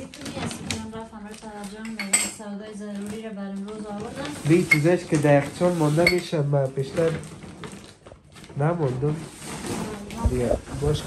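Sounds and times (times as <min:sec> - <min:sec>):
cutlery and dishes clinking: 0:01.7 - 0:02.5, 0:04.2 - 0:06.4.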